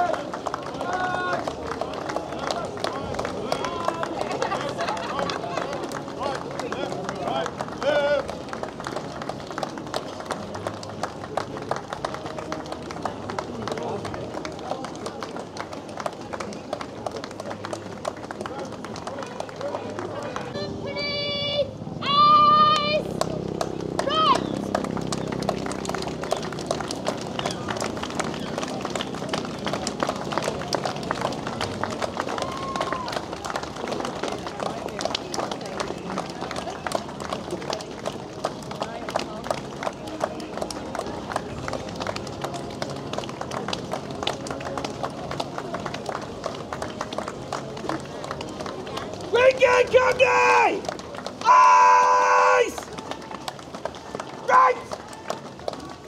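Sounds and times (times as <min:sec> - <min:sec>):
spectators talking: 0:00.0 - 0:56.0.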